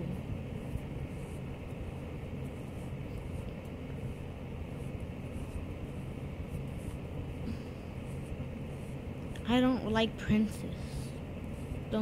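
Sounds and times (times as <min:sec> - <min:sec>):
fan rushing noise: 0:00.0 - 0:12.0
low hum: 0:00.0 - 0:12.0.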